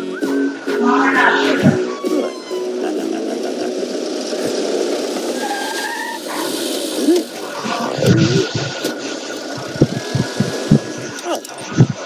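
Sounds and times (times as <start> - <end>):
engine idling unevenly: 2.0 - 11.4.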